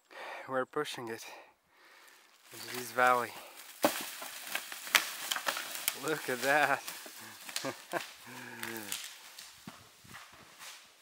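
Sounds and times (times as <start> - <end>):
boulder knocking down slope: 3.8 - 6.5.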